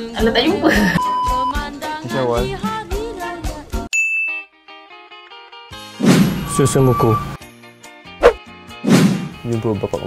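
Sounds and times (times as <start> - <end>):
soft background music: 5.7 - 10.0.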